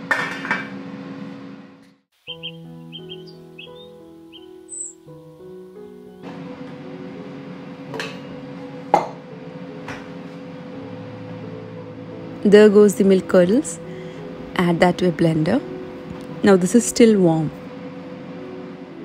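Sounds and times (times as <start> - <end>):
soft music with high chirps: 2.2 - 19.0.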